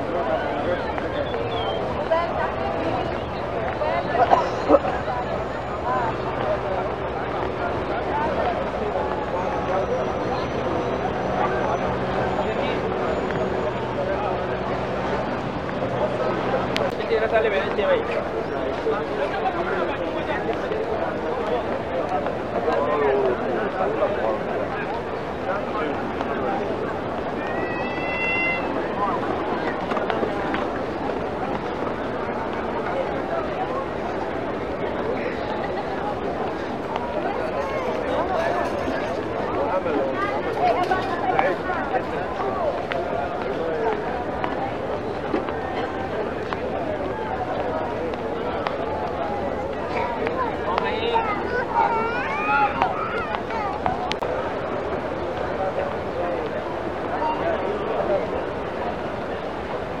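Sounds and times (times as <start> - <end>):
crowd babble: 0.0 - 60.0.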